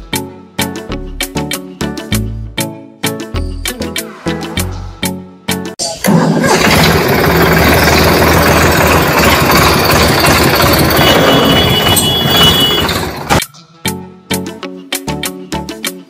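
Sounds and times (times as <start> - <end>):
pull-start string: 5.8 - 13.4
small model engine running: 6.5 - 13.3.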